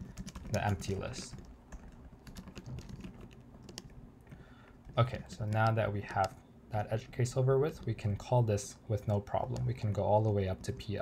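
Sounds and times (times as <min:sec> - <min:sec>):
typing on computer keyboard: 0:00.0 - 0:06.4.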